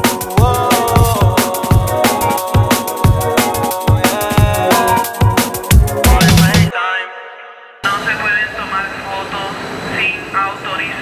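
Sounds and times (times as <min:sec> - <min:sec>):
person speaking: 0:06.0 - 0:09.4
subway train running: 0:07.9 - 0:11.0.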